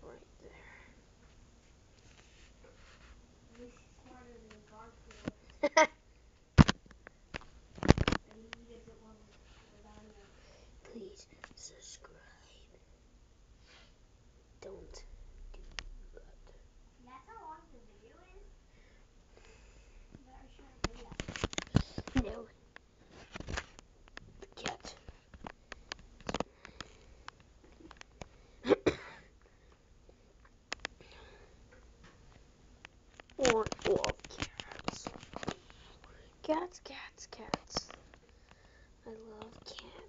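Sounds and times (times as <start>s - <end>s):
short cough: 28.6s - 29.3s
close whispering: 39.3s - 40.0s.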